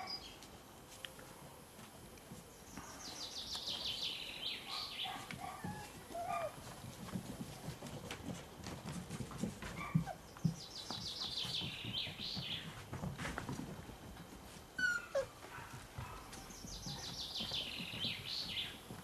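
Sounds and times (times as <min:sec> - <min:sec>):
puppy whimpering: 0:14.8 - 0:15.4.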